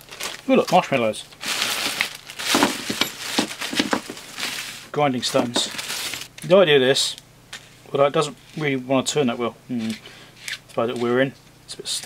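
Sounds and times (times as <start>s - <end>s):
plastic bag crinkling: 0.0s - 6.3s.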